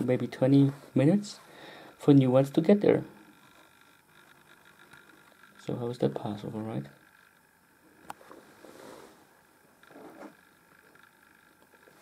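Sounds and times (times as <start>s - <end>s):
low hiss: 0.0s - 12.0s.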